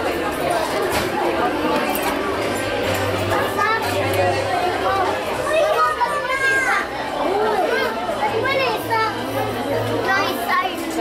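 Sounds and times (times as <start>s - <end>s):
people chattering: 0.0s - 11.0s
children's high-pitched voices: 3.3s - 11.0s.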